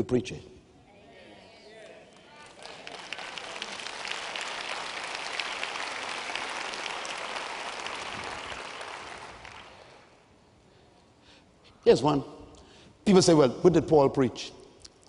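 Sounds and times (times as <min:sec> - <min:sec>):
large audience applauding: 0:02.2 - 0:10.2.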